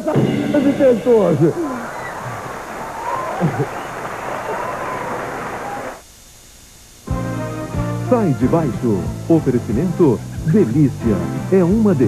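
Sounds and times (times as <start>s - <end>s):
people cheering: 0.2s - 6.0s
audience applauding: 1.2s - 6.0s.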